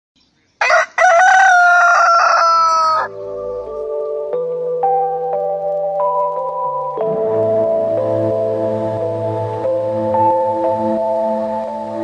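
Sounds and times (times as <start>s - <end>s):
rooster crowing: 0.6s - 3.2s
soft musical tones: 3.1s - 12.0s.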